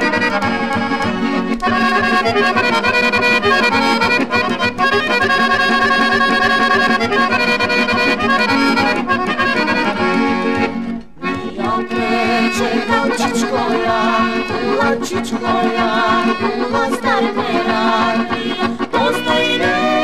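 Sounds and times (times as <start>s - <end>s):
folk music led by accordion: 0.0s - 20.0s.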